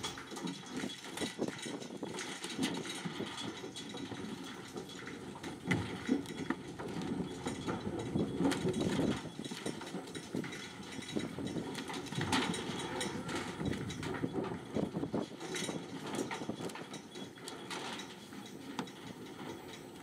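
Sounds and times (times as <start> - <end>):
cattle hooves on metal floor: 0.0 - 20.0.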